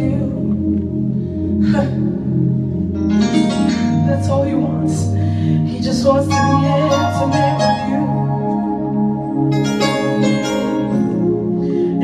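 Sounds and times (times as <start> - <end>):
keyboard sustained chords: 0.0 - 12.0
sharp breath into microphone: 11.5 - 12.0.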